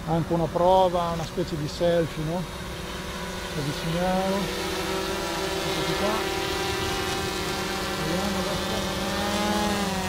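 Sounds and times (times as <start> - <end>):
quadcopter buzzing hum: 0.0 - 10.0.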